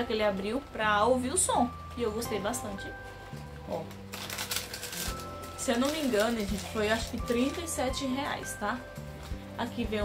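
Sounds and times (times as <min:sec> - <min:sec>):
packaging rustling and scraping: 0:03.0 - 0:07.9.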